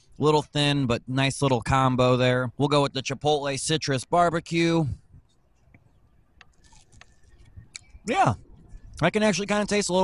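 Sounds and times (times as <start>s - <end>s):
man chewing: 6.3s - 7.9s.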